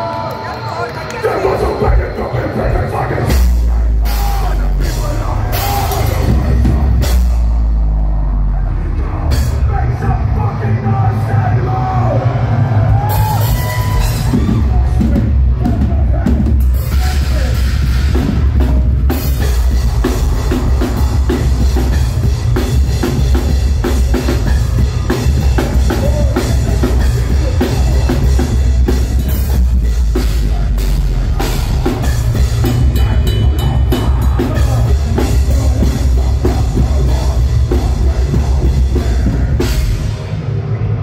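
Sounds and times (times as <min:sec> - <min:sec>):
metal band playing live: 0:00.0 - 0:41.0.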